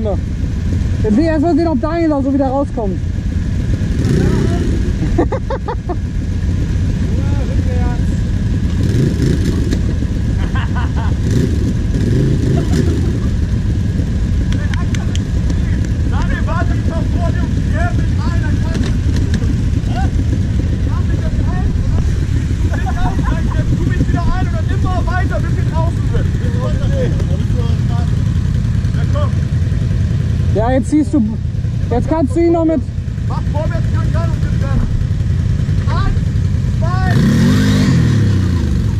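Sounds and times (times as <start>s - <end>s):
quad engine idling: 0.0s - 38.9s
voices calling out: 0.0s - 38.9s.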